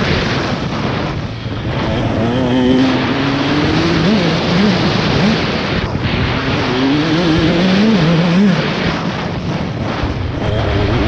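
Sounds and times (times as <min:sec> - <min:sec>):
dirt bike engine accelerating: 0:00.0 - 0:11.0
wind rush on microphone: 0:00.0 - 0:11.0.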